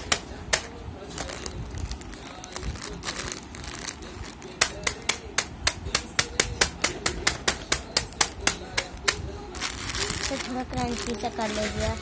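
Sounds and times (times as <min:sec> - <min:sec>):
hand hitting chip packet: 0:00.0 - 0:12.0.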